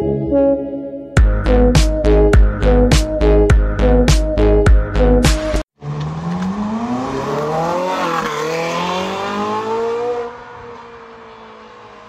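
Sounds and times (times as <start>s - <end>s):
sports car engine accelerating: 5.8s - 12.0s.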